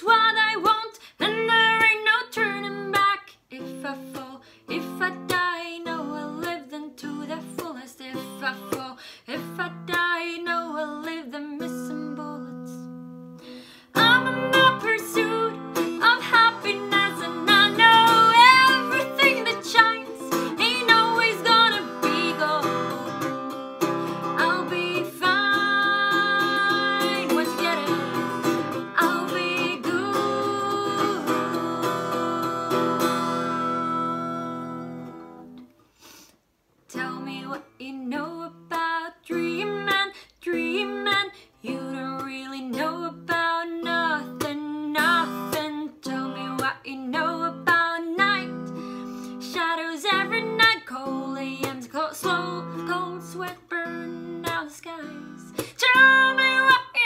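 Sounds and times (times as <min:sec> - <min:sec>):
woman singing: 0:00.0 - 0:35.6, 0:36.9 - 0:57.0
acoustic guitar strumming: 0:13.0 - 0:35.6.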